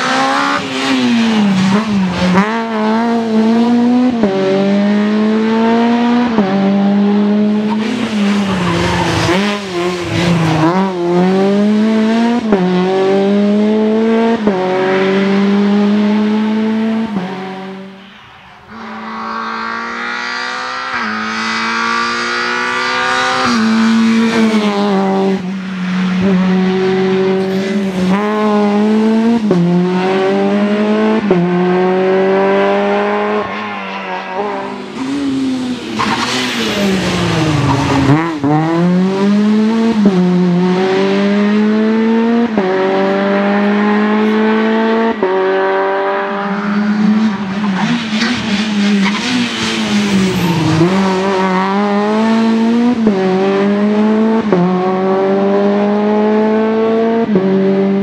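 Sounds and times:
rally car engine at full throttle: 0.0s - 58.0s.

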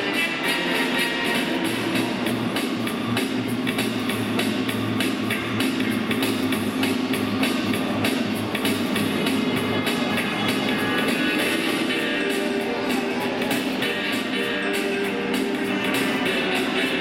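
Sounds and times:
bass line: 0.0s - 17.0s
steady drum beat: 0.0s - 17.0s.

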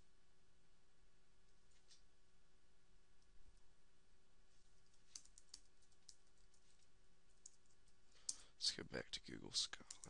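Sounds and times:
quiet steady hum: 0.0s - 10.0s.

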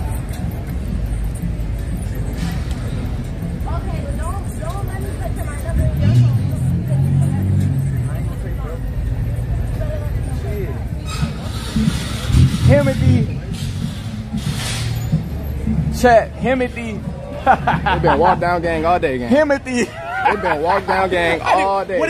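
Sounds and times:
traffic rumble: 0.0s - 22.0s.

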